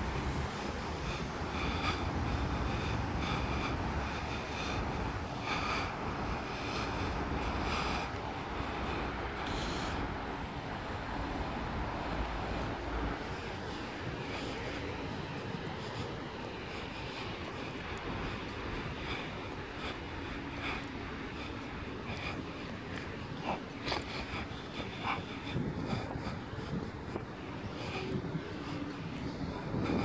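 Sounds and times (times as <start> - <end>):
passing road traffic: 0.0 - 30.0.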